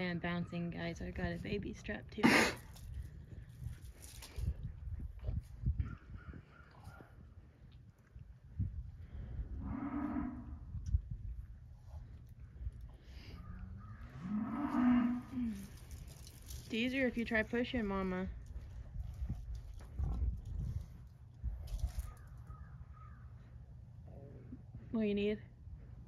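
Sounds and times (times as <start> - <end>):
cow mooing: 9.6 - 10.6, 13.8 - 15.6.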